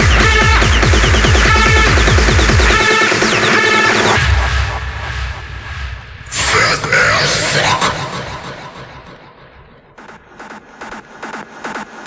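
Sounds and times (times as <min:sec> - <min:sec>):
hard trance music: 0:00.0 - 0:12.0.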